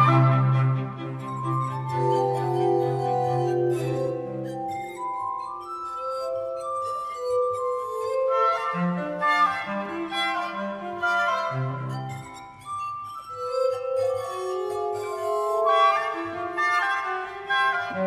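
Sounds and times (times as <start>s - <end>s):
glass harmonica melody: 0.0s - 18.0s.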